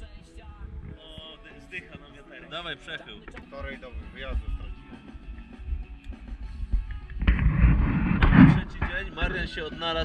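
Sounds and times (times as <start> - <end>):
wind buffeting microphone: 0.0 - 2.0, 3.6 - 10.0.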